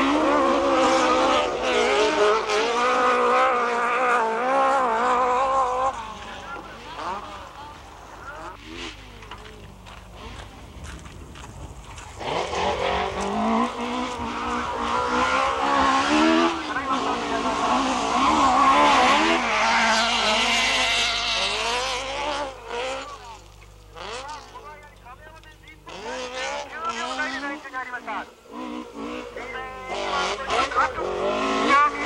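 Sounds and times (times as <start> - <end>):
car engine revving on gravel: 0.0 - 32.0.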